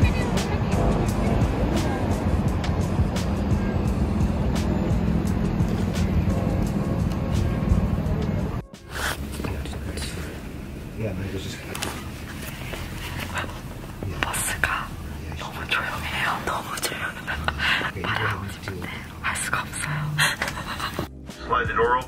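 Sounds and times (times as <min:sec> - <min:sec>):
background music: 0:00.0 - 0:22.0
woman whispering: 0:13.2 - 0:21.1.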